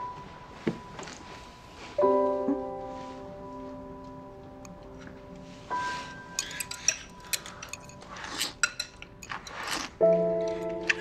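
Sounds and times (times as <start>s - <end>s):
slurping noodles: 9.3s - 10.0s.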